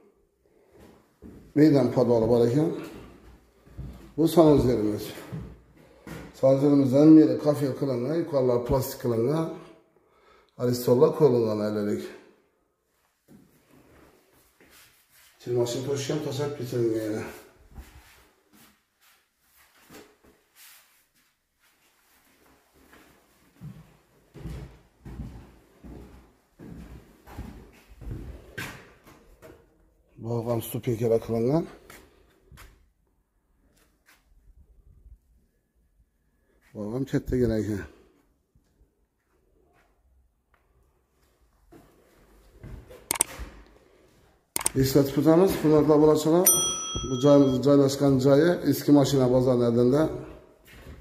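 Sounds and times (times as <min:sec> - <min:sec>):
footsteps in empty room: 0:00.0 - 0:07.6, 0:12.0 - 0:34.5, 0:36.2 - 0:46.4, 0:48.8 - 0:51.0.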